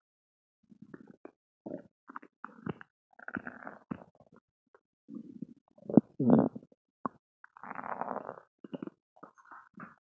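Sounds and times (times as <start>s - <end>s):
stomach gurgling and rumbling: 0.7s - 4.4s, 5.1s - 10.0s.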